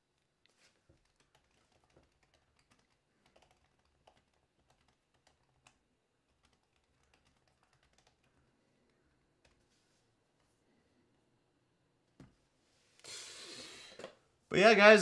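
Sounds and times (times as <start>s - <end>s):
typing on a keyboard: 0.8s - 8.5s.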